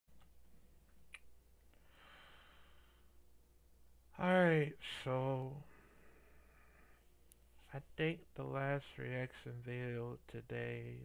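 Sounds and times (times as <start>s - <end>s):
low steady hum: 0.1s - 11.0s
faint breath near microphone: 1.7s - 3.3s, 5.6s - 7.7s.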